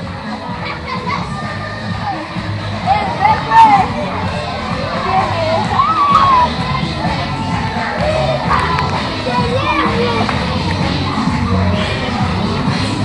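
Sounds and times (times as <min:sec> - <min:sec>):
children shouting and cheering: 0:00.0 - 0:13.0.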